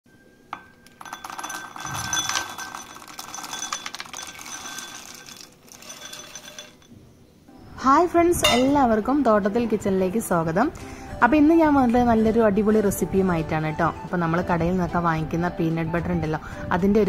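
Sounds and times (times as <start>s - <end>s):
peanuts rattling into glass bowl: 0.9s - 6.9s.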